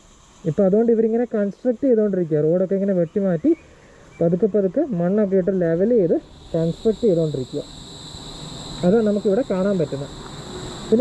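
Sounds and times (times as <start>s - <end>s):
high-pitched insect drone: 4.2s - 11.0s
man talking: 8.8s - 10.1s.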